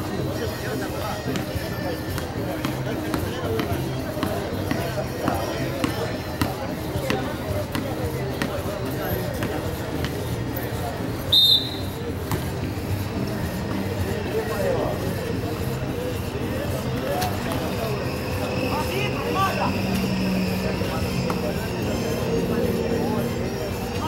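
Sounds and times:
background music: 0:00.0 - 0:24.0
crowd chatter: 0:00.0 - 0:24.0
sharp whistle blast: 0:11.3 - 0:12.0
ball thudding on concrete: 0:12.3 - 0:12.6.

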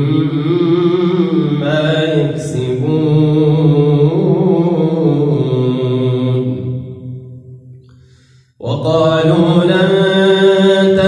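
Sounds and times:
man reciting melodically: 0:00.0 - 0:06.8, 0:08.6 - 0:11.0
breath: 0:07.8 - 0:08.6.

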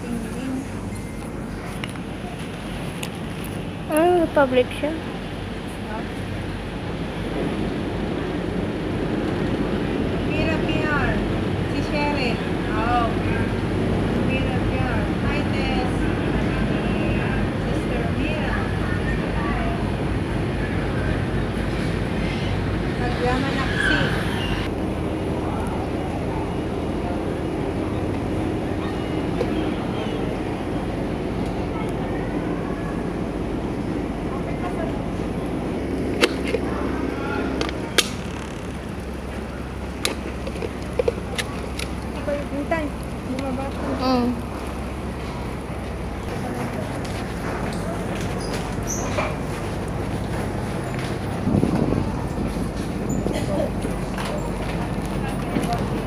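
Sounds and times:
people chattering: 0:00.0 - 0:07.1, 0:10.1 - 0:56.0
ferry engine rumble: 0:00.0 - 0:56.0
wind: 0:00.0 - 0:56.0
rushing water: 0:25.2 - 0:56.0.

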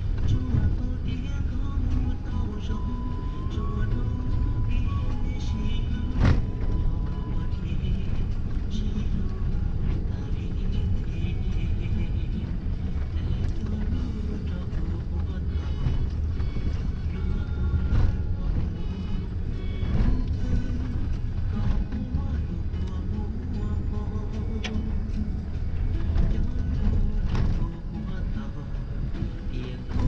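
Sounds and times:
music: 0:00.0 - 0:30.0
vehicle rumbling on dirt road: 0:00.0 - 0:30.0.

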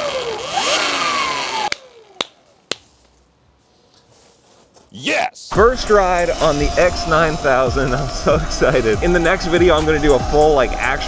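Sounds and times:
electric motor and chain whine: 0:00.0 - 0:02.2, 0:05.6 - 0:11.0.

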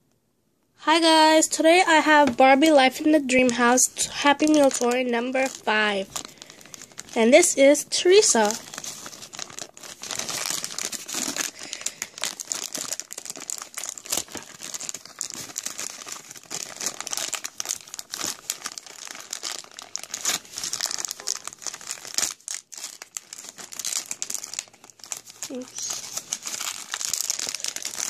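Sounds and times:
plastic bag crinkling: 0:02.4 - 0:28.0.

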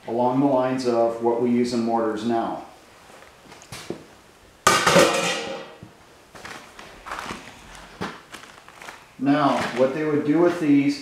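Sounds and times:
sheet-metal plate clattering: 0:04.7 - 0:05.8.

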